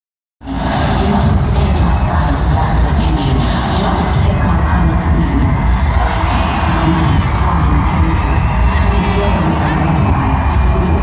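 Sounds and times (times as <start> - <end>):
crowd cheering and screaming: 0.4 - 11.0
loud concert music with heavy bass: 0.4 - 11.0.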